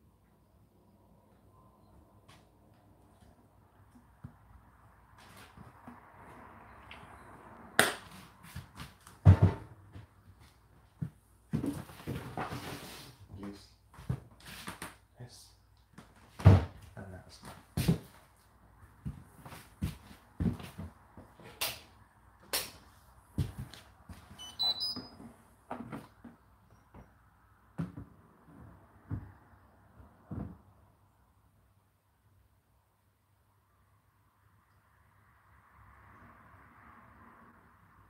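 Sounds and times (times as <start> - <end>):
washing machine electronic beeps: 24.4 - 25.2.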